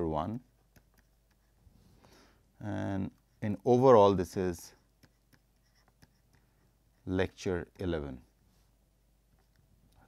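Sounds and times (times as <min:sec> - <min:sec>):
stylus ticking on tablet screen: 0:00.4 - 0:01.5, 0:04.8 - 0:06.5.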